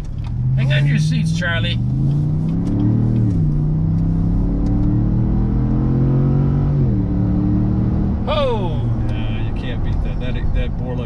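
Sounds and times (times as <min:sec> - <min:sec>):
engine accelerating with upshifts: 0:00.0 - 0:11.0.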